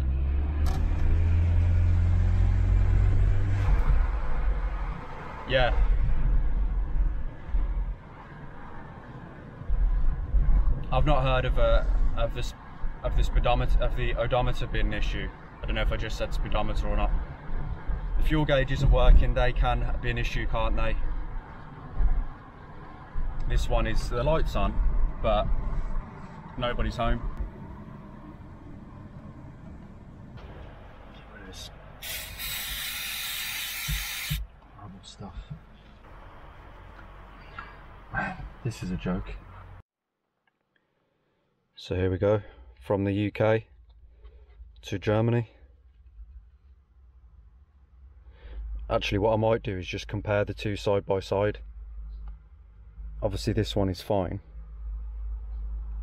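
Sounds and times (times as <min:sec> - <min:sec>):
car engine and road rumble: 0:00.0 - 0:39.9, 0:42.6 - 0:56.0
aerosol spray can hissing: 0:32.0 - 0:34.4.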